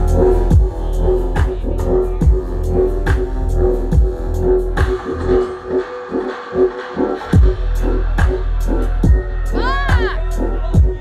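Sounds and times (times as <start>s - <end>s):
heavy bass hit: 0.0s - 5.5s
dubstep music over sound system: 0.0s - 11.0s.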